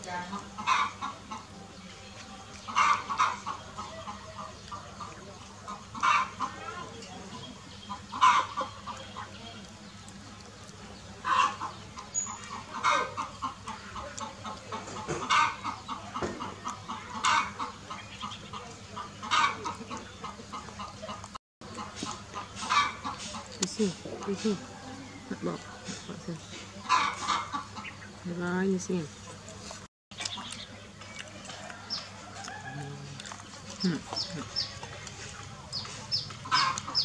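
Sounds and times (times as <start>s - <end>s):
chickens clucking: 0.0s - 37.0s.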